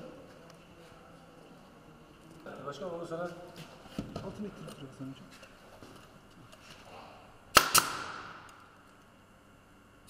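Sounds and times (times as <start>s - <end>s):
nail gun firing: 7.5s - 8.5s.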